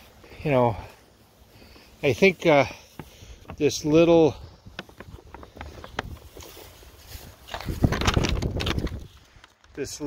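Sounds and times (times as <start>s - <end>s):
paper sheet rustling and crinkling: 3.8s - 10.0s.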